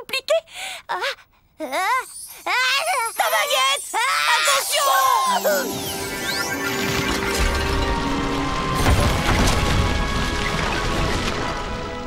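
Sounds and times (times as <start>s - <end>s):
music: 4.6s - 12.0s.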